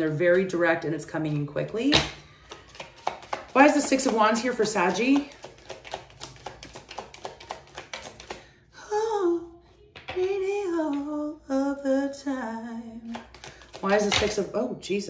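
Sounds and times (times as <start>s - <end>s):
cards being shuffled: 2.4s - 8.4s, 13.1s - 14.4s
woman humming: 8.8s - 9.6s.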